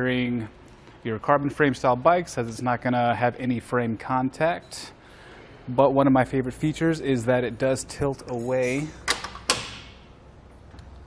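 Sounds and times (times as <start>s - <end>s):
metal clank ringing: 8.2s - 10.0s.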